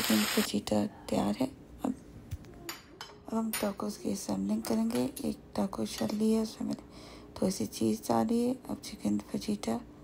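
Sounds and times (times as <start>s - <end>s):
woman talking: 0.0s - 2.0s, 3.2s - 9.9s.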